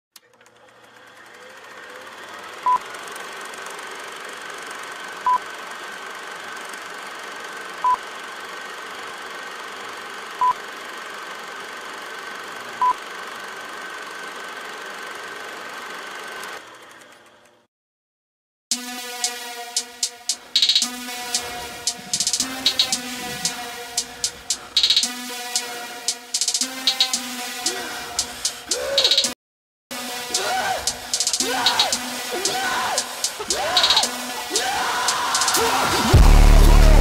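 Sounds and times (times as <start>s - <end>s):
thin high tone: 18.7s - 28.4s.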